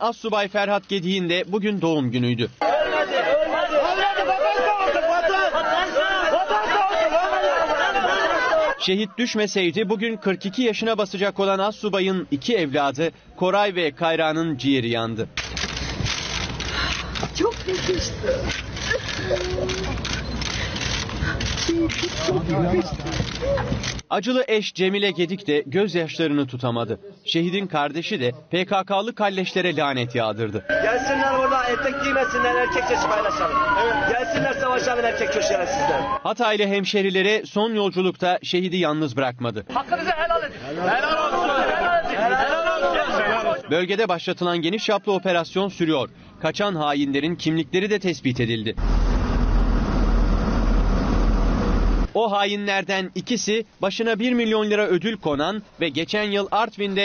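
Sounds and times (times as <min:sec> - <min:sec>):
murmur of large crowd: 0:02.2 - 0:24.2, 0:25.0 - 0:46.6
vehicle engine rumbling: 0:15.3 - 0:24.1, 0:48.4 - 0:52.2.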